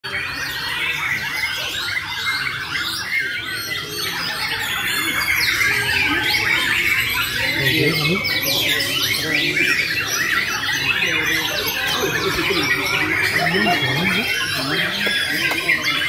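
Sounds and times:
birds singing in chorus: 0:00.0 - 0:16.0
people talking: 0:00.0 - 0:16.0.

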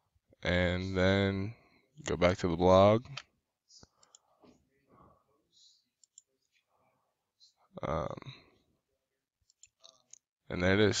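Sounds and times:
computer mouse clicks: 0:06.0 - 0:06.3.

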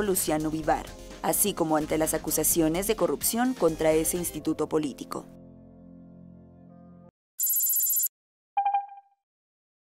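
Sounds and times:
quick electronic beeps: 0:07.4 - 0:09.2.

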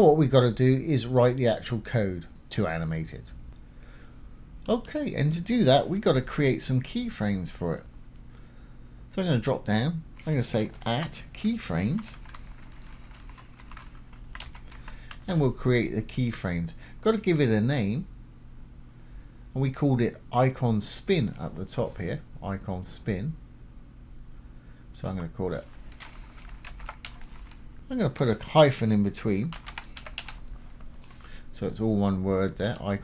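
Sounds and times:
keyboard typing clicks: 0:12.1 - 0:15.2, 0:26.0 - 0:27.2, 0:29.5 - 0:30.5.

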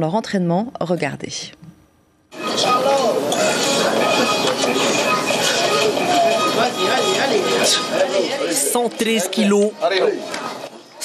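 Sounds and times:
people talking over one another: 0:02.4 - 0:11.0.

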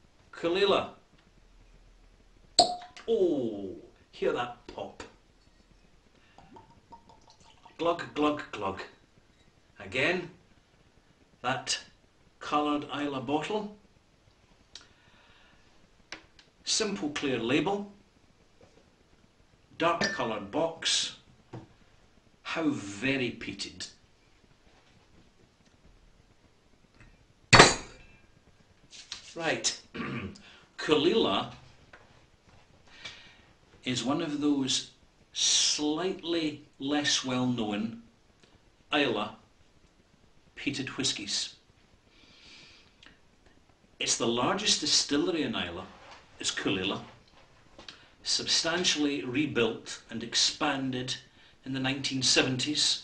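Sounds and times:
cork stopper popping from bottle: 0:02.6 - 0:03.0, 0:06.4 - 0:07.4
glassy ring: 0:02.6 - 0:03.0, 0:20.0 - 0:20.3
knock on glass bottle: 0:02.6 - 0:03.0, 0:20.0 - 0:20.2.

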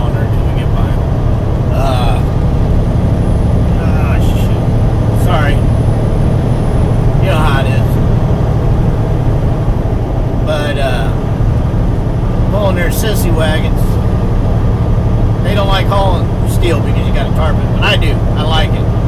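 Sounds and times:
road noise: 0:00.0 - 0:19.0
truck engine rumble: 0:00.0 - 0:19.0.

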